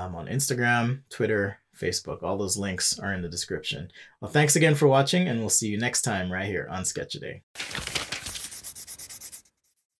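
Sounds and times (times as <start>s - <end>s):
scratchy scribbling: 8.2s - 10.0s.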